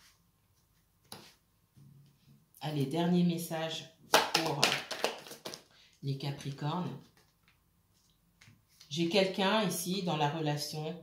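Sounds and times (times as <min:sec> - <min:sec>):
person speaking: 0:02.6 - 0:07.2, 0:08.7 - 0:11.0.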